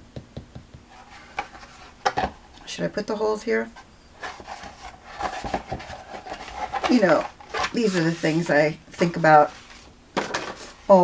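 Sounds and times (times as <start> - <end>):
paper rubbing and rustling: 4.2 - 9.9.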